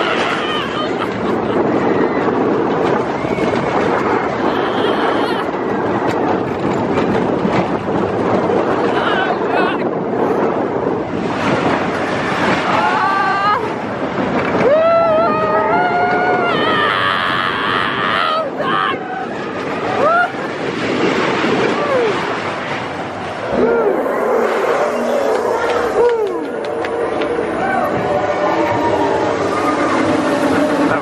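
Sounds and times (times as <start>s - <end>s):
roller coaster rumbling on track: 0.0s - 31.0s
riders yelling and screaming: 3.2s - 5.6s, 14.5s - 20.5s.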